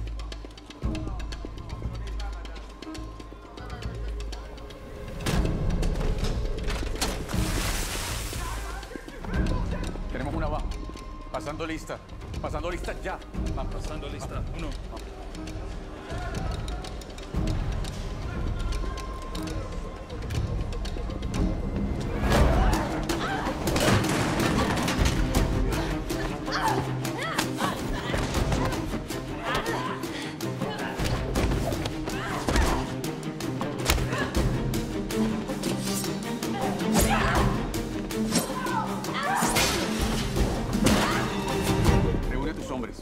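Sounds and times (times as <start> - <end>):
tense film score: 0.0 - 43.0.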